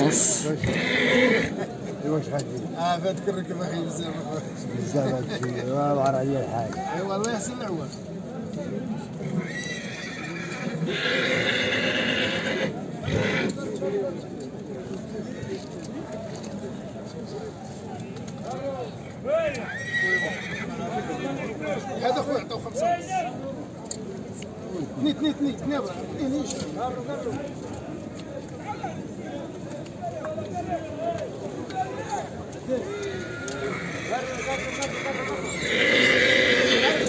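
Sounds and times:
crowd of men talking: 0.0s - 37.0s
horse whinnying: 0.3s - 1.6s, 9.3s - 13.6s, 19.6s - 20.8s, 32.8s - 37.0s.

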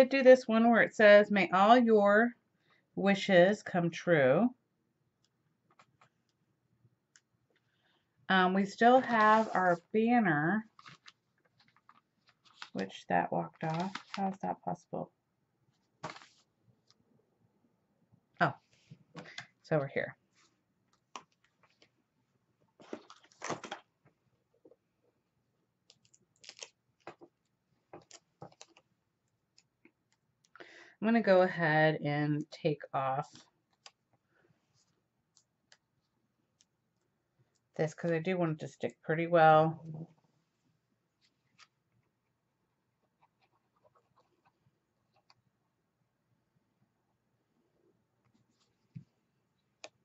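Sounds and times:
cardstock rustling and crinkling: 8.9s - 9.9s, 10.6s - 14.6s, 15.8s - 16.5s, 22.7s - 24.1s, 25.9s - 28.9s
paper ticking as handled: 10.7s - 12.9s, 13.5s - 14.4s.

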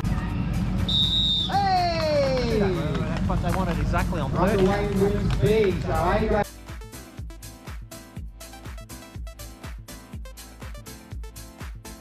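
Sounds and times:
background music: 0.0s - 12.0s
high whistle blast: 0.8s - 3.0s.

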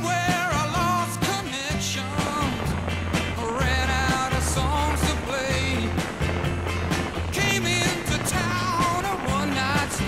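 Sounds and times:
song with bass and drums: 0.0s - 10.0s.

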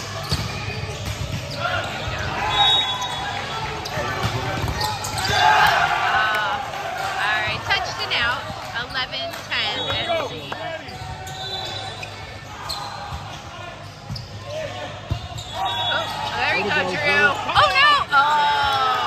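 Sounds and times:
players shouting: 0.0s - 8.5s, 9.6s - 19.0s.

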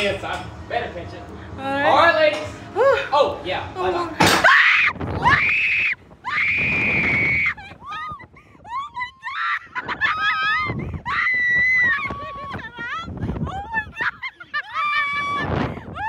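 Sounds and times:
women screaming: 4.4s - 16.0s
wind on microphone: 4.8s - 16.0s
laughter: 9.3s - 10.8s, 12.0s - 16.0s.

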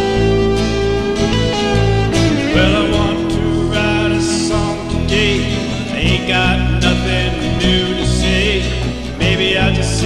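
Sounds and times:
country guitars playing: 0.0s - 10.0s
steady bass: 0.0s - 10.0s.

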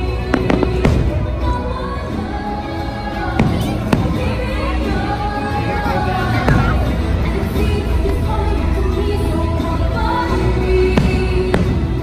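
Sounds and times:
music playing: 0.0s - 12.0s
fireworks bangs: 0.2s - 1.6s, 10.9s - 12.0s.

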